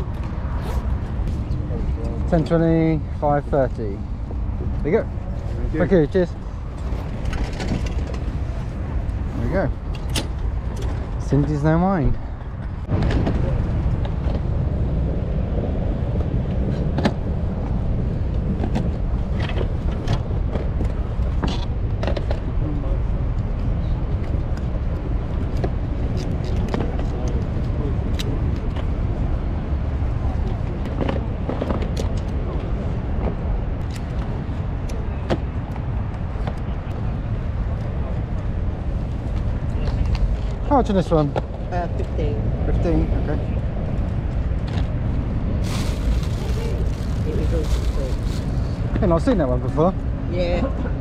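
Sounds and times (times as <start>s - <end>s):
steady low rumble: 0.0s - 51.0s.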